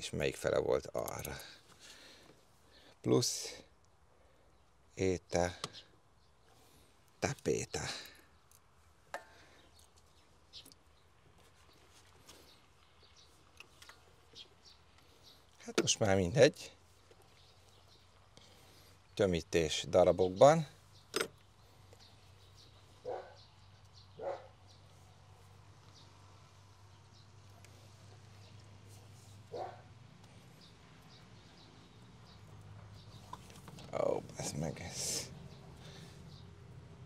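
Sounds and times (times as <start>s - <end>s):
faint dog barking: 23.0s - 23.5s, 24.2s - 24.6s, 29.5s - 29.9s.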